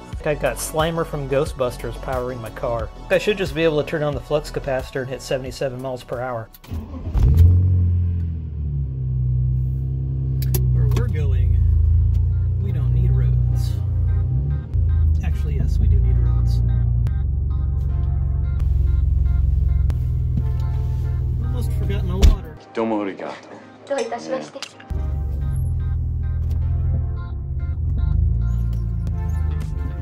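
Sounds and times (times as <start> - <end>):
background music: 0.0 - 30.0
car engine drone: 6.7 - 22.5, 24.9 - 30.0.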